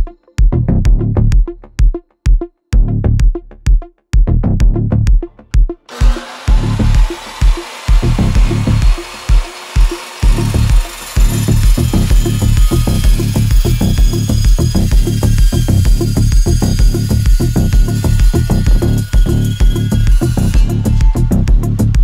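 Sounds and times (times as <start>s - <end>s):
electronic music with steady beat: 0.0s - 22.0s
chop saw cutting metal tubing: 5.9s - 22.0s.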